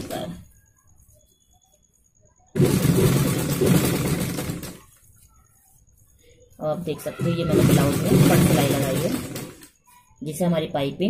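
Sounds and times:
sewing machine running: 0:02.6 - 0:04.8, 0:07.1 - 0:09.7.

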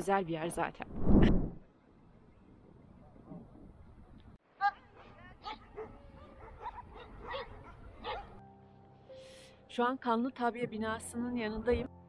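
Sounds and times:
dog barking: 0:04.7 - 0:08.4.

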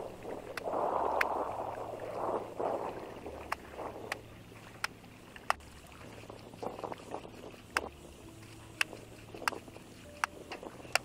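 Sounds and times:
laundry sloshing in water: 0:00.0 - 0:09.8.

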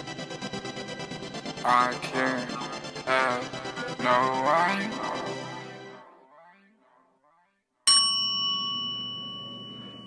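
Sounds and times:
bright chime ding: 0:07.9 - 0:10.0.

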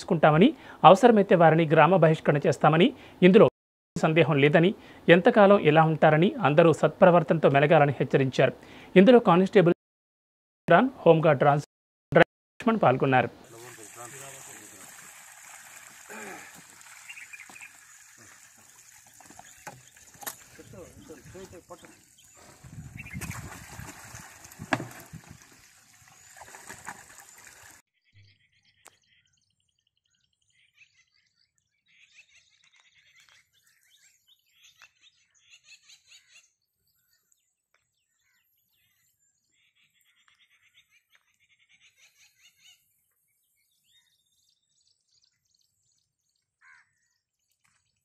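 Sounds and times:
liquid splashing and pouring: 0:13.5 - 0:27.8
birds chirping and trilling: 0:16.8 - 0:23.6, 0:25.1 - 0:48.0.

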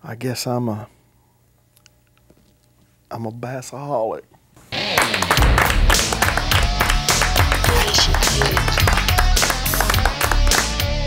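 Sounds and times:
rock-rap instrumental music: 0:04.8 - 0:11.0
loud steady drum beat: 0:05.4 - 0:10.1.

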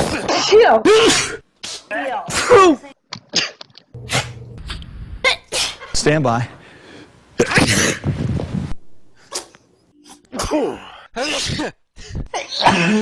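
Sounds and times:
people sneezing: 0:00.0 - 0:04.4, 0:05.3 - 0:05.9, 0:09.3 - 0:13.0.

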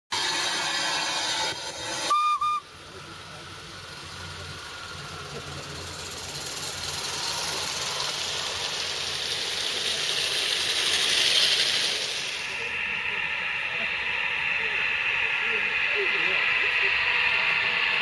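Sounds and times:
steam whistle toots: 0:00.1 - 0:02.7
steam hissing: 0:00.1 - 0:18.0.

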